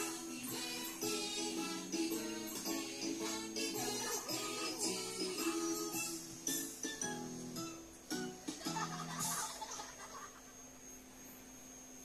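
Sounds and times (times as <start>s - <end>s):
low hum with high whine: 0.0s - 12.0s.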